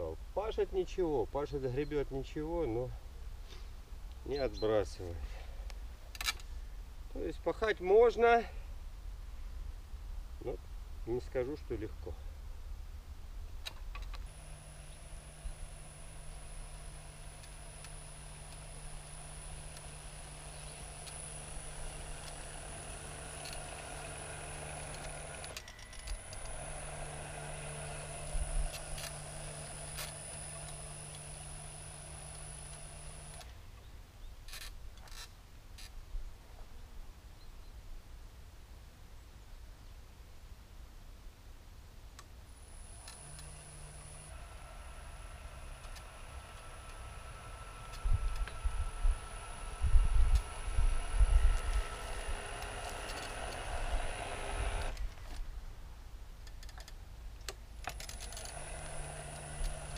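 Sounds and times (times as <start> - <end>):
electric cultivator motor whine: 14.3 - 33.5, 42.6 - 55.3, 57.8 - 59.9
sharp clicks: 16.0 - 26.8, 27.4 - 33.5, 50.3 - 55.4, 56.4 - 59.9.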